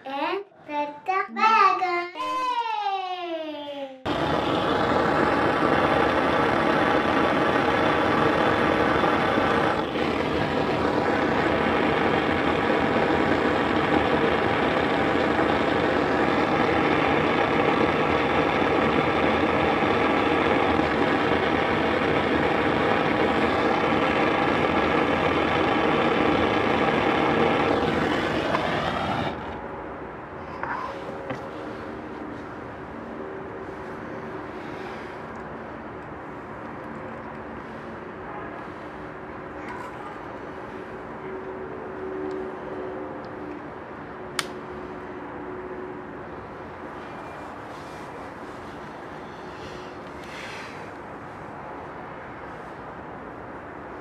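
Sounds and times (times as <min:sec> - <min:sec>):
burning plastic crackling: 0:04.1 - 0:29.6
gas torch rushing: 0:04.1 - 0:39.4, 0:46.3 - 0:53.1.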